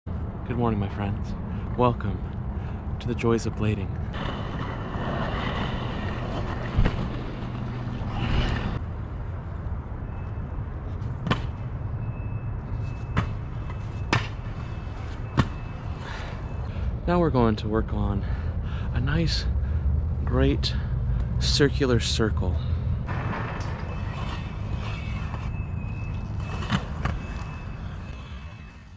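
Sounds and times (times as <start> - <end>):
skate wheels rolling on concrete: 4.1 - 8.8, 23.1 - 28.9.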